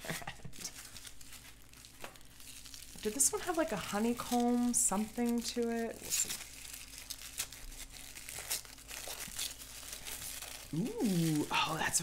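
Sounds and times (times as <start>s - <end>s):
tissue paper crinkling: 0.0s - 12.0s.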